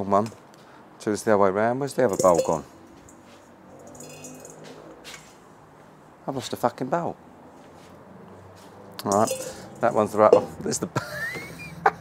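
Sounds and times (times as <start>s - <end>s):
metal bowl ringing: 2.1s - 4.6s, 9.0s - 10.6s.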